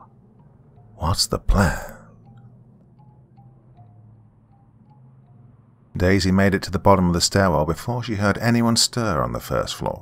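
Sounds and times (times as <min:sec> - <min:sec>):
low steady drone: 0:00.0 - 0:08.5.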